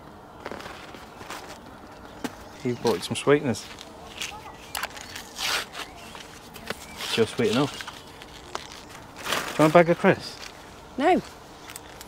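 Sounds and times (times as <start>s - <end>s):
sweetener pack rustling: 3.6s - 12.0s.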